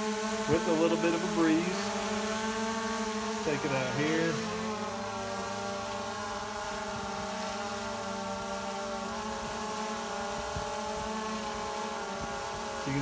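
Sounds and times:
drone propellers whining: 0.0s - 13.0s.

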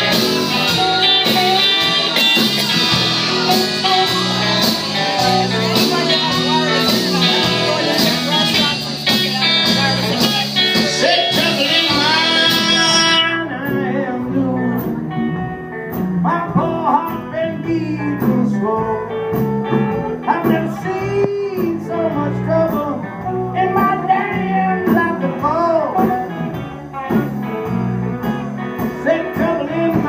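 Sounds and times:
person singing: 0.0s - 15.6s, 16.2s - 27.5s, 28.2s - 30.0s
live rock band playing: 0.0s - 30.0s.

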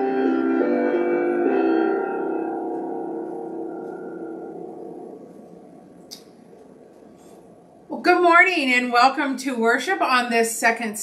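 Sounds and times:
piano chord ringing: 0.0s - 6.6s.

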